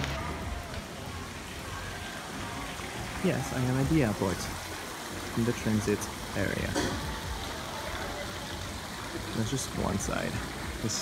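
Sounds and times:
fountain water splashing: 0.0s - 11.0s.

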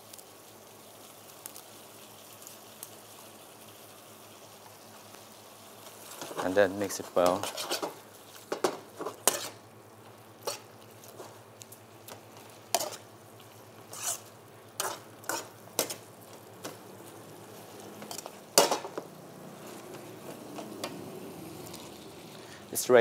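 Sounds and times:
faint sizzle: 0.0s - 23.0s
metal spatula scraping a wok: 6.1s - 9.6s, 10.4s - 11.3s, 12.6s - 13.1s, 13.8s - 16.1s, 18.0s - 19.0s.

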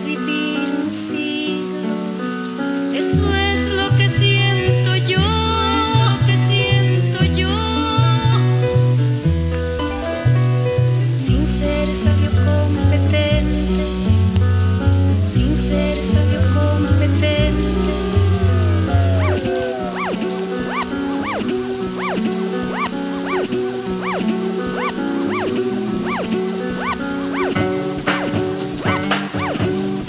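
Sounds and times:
sustained notes: 15.4s - 30.0s
swooping high synth notes: 17.3s - 29.8s.

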